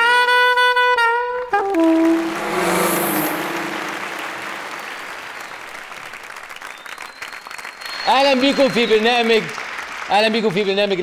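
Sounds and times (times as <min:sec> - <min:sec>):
theme music held note: 0:01.6 - 0:05.6
studio audience applauding: 0:03.9 - 0:11.0.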